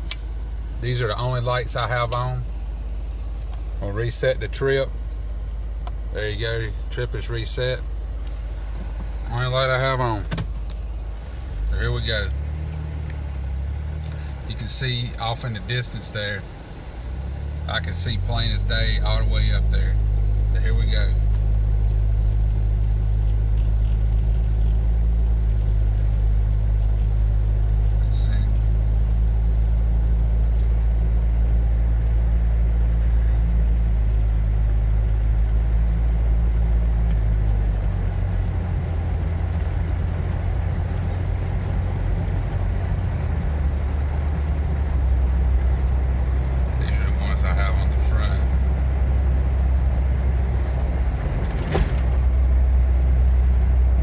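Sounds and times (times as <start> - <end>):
car engine and road drone: 0.0 - 54.0.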